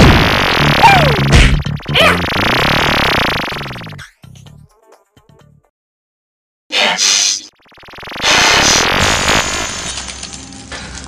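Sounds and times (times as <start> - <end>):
cartoon laser blast: 0.0 - 4.0, 6.8 - 9.7.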